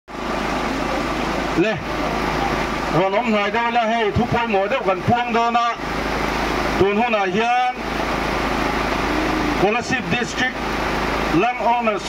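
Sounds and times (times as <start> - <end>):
steady rushing noise: 0.1 - 12.0
low hum: 7.8 - 11.4.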